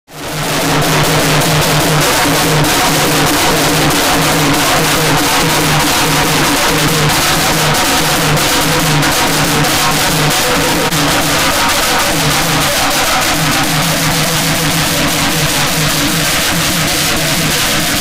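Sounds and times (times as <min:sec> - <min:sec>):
loud dense street drumming: 0:00.1 - 0:18.0.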